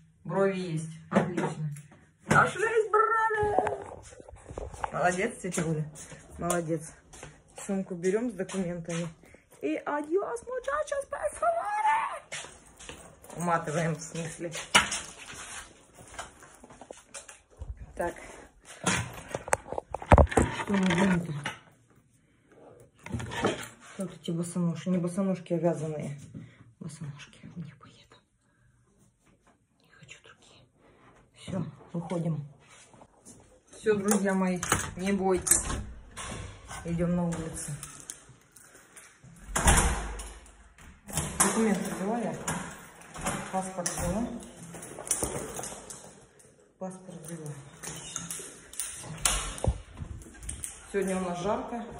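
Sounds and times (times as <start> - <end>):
faint rustling of clothing: 1.8 - 23.0, 27.5 - 35.4
door slamming shut: 39.5 - 40.3.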